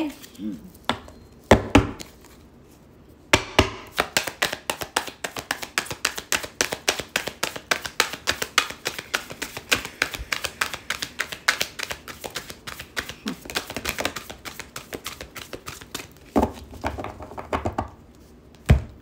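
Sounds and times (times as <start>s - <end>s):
cards being shuffled: 4.2s - 16.3s.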